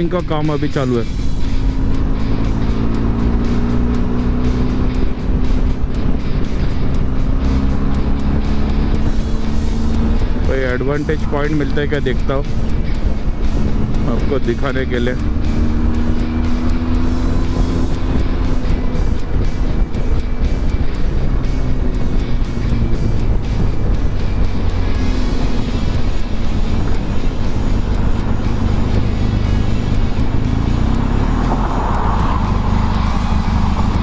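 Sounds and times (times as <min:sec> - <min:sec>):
motorcycle engine running: 0:00.0 - 0:34.0.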